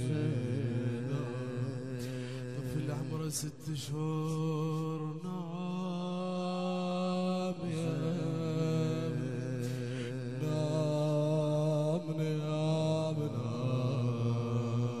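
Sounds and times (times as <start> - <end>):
male voices chanting a lament: 0.0 - 15.0.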